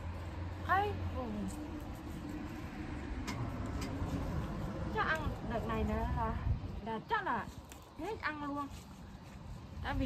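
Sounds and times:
leafy plants rustling: 0.1 - 10.0.

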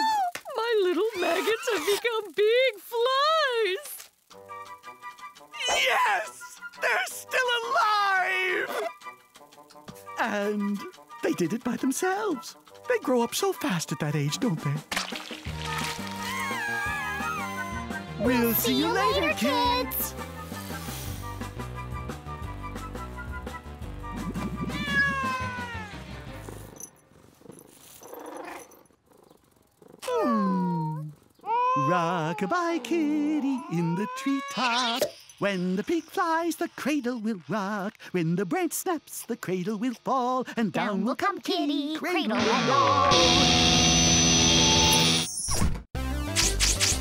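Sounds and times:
cartoon cat meow: 0.0 - 1.9, 15.7 - 17.9, 24.4 - 26.0, 30.0 - 35.0
background music: 4.1 - 26.9
distorted guitar amplifier blare: 42.4 - 45.3.

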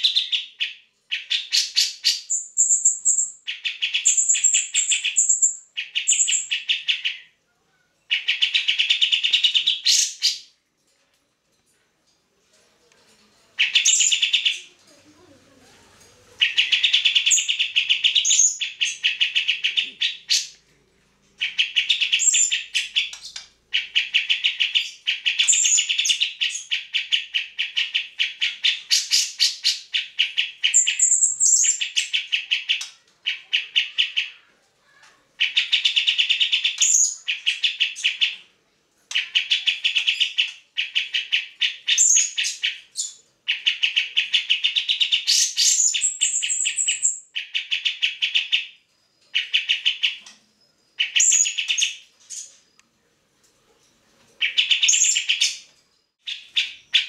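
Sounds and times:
bird chattering song: 0.0 - 7.4, 8.1 - 10.5, 13.6 - 14.8, 16.4 - 20.6, 21.4 - 34.5, 35.4 - 38.5, 39.1 - 52.8, 54.4 - 57.0.

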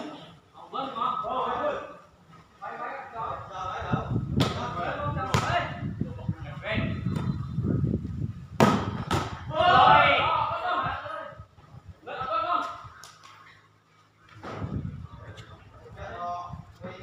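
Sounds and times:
volleyball smacks: 4.4 - 5.6, 8.6 - 9.4
players shouting: 9.2 - 11.4.

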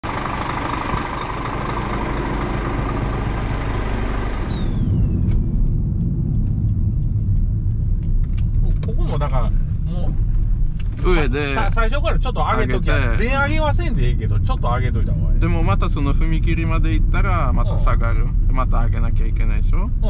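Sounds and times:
car road noise rumble: 0.0 - 20.0
humming drone with falling sweep: 0.2 - 10.8.

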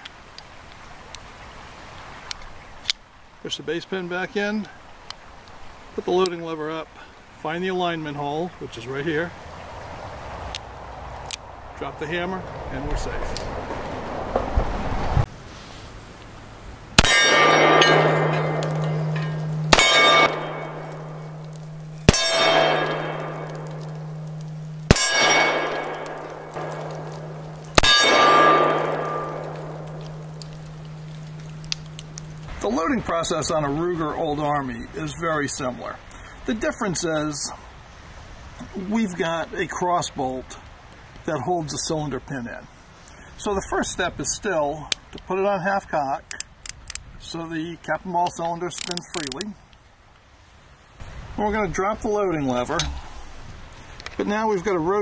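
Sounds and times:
steady hiss: 14.6 - 55.0
metallic ringing: 17.0 - 32.6
small metallic clicks: 46.3 - 47.1, 48.7 - 49.5.

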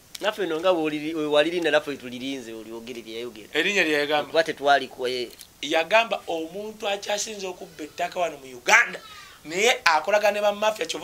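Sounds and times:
man speaking excitedly: 0.2 - 11.0.

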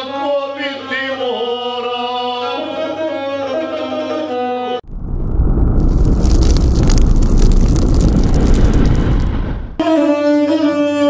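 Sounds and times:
rumbling fire-like whoosh: 4.8 - 9.8.

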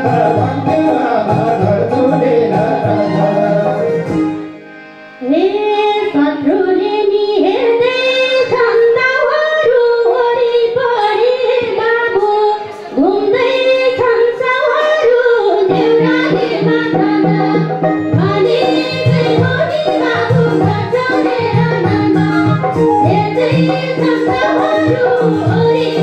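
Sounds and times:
woman singing folk song: 5.2 - 26.0.

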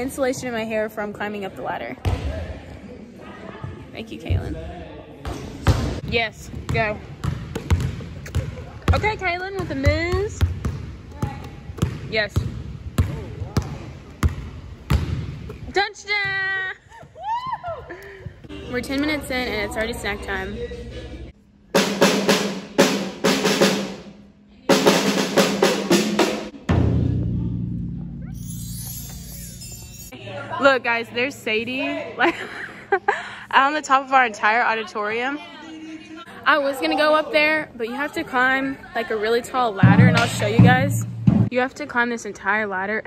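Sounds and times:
basketball bouncing on hardwood floor: 5.6 - 15.6
bar chimes shimmering: 28.3 - 30.2.

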